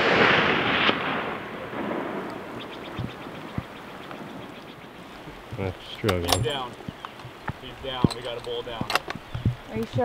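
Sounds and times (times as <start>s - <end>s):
rifle shot echoing: 0.0s - 2.7s
sharp crack: 0.0s - 4.6s.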